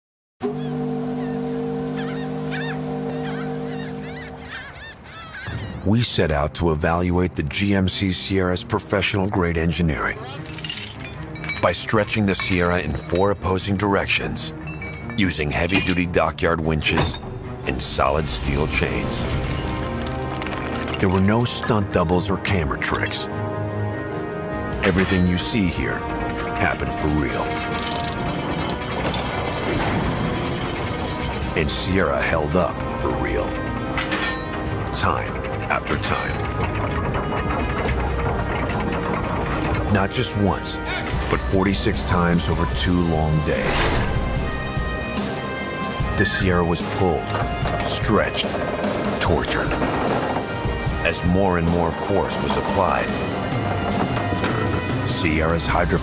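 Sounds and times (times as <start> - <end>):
ship's horn blast: 0.4 - 4.8
gulls calling: 0.4 - 6.5
music: 0.4 - 56.0
winch ratcheting chain: 17.2 - 22.0, 25.4 - 42.1, 47.0 - 56.0.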